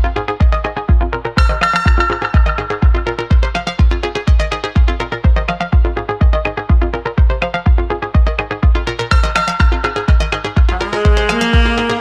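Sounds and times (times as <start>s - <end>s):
folk song with electronic beat: 0.0s - 12.0s
heavy bass kick: 0.0s - 12.0s.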